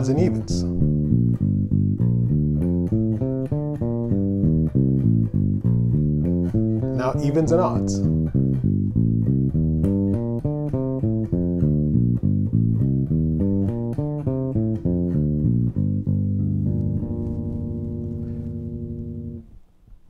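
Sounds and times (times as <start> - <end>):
electric bass plucked notes: 0.0 - 19.6.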